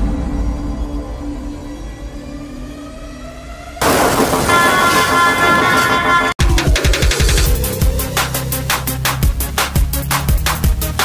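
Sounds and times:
loud crash: 3.8 - 6.4.

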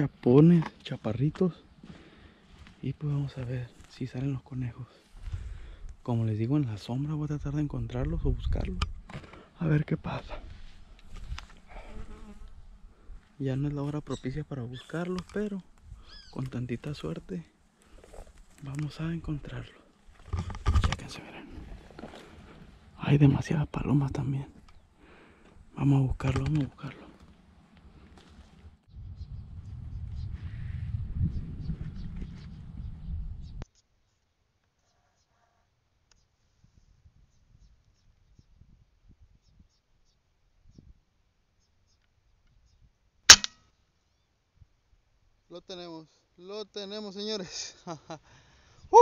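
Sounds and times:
camera knocking and rubbing: 20.2 - 21.1
air rifle shot crack: 43.3 - 43.6.

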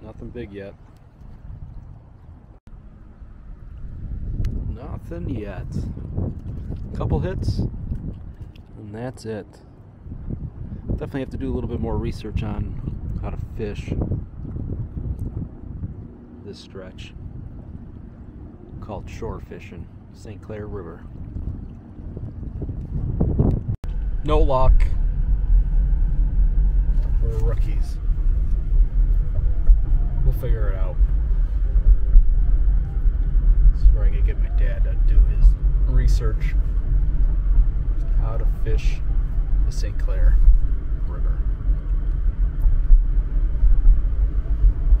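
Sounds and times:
wind rumbling on microphone: 0.0 - 45.0
road and engine noise in car: 2.0 - 45.0.

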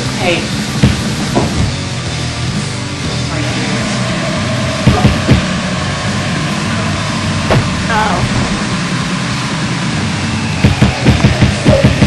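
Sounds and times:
loud steady rumbling noise: 0.0 - 12.0.

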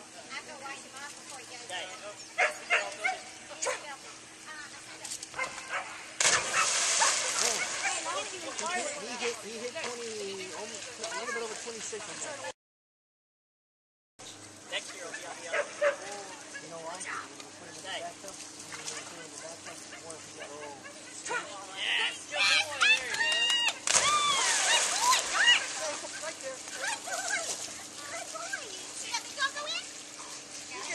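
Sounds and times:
low steady hum: 0.0 - 12.5, 14.2 - 30.9
dog barking: 2.4 - 3.8, 5.4 - 8.1, 15.5 - 16.1
onlookers talking: 14.8 - 29.6.

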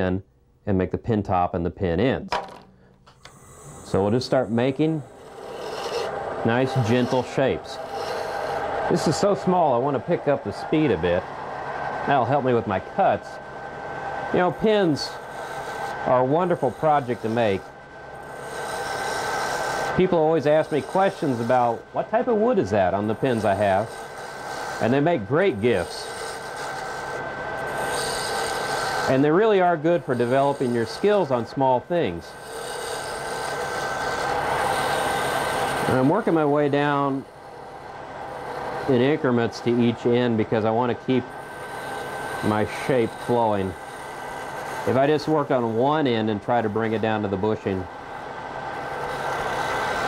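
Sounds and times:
faint steady whine: 0.0 - 50.0
wood lathe tool shaving wood: 3.3 - 50.0.

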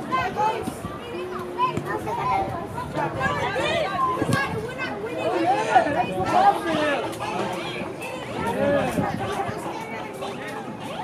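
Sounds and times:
children and adults calling out: 0.0 - 11.0.

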